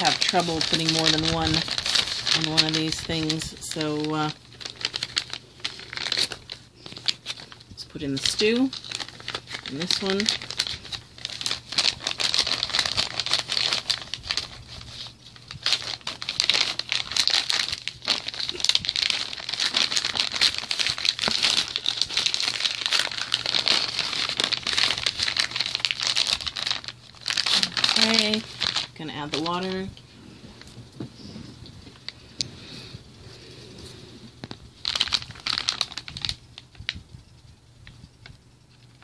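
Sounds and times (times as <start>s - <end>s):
plastic sleeve crinkling: 0.0s - 33.2s, 33.8s - 37.0s.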